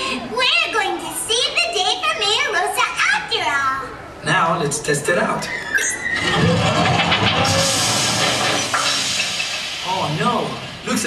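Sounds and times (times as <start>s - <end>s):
steam hissing: 7.3s - 11.0s.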